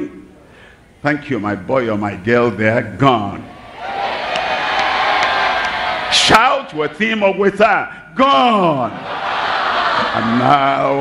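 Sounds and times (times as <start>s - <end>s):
crowd cheering and shouting: 3.5s - 7.6s, 8.9s - 11.0s.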